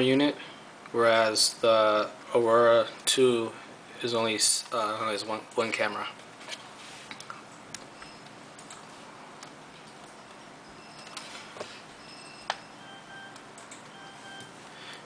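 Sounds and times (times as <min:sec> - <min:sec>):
short high beeps: 0:10.2 - 0:11.4, 0:12.0 - 0:14.6.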